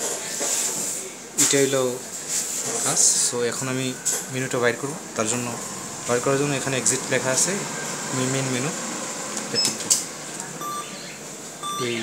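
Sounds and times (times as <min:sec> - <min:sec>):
short high electronic beeps: 0:10.6 - 0:11.0, 0:11.6 - 0:12.0.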